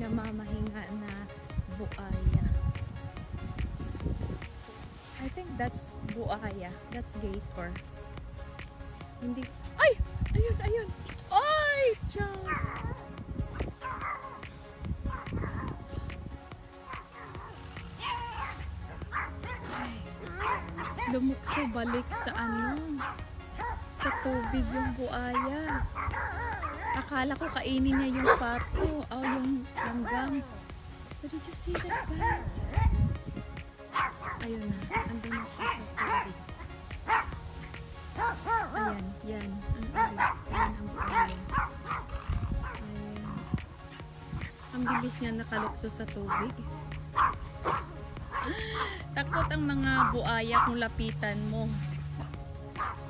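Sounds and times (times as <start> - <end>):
background music: 0.0 - 53.0
wind rumble on microphone: 0.0 - 53.0
dog barking: 12.5 - 14.5, 15.1 - 15.8, 16.8 - 30.4, 31.7 - 33.0, 33.9 - 37.4, 38.2 - 39.0, 39.9 - 42.8, 44.8 - 48.5, 49.3 - 50.8, 52.8 - 53.0.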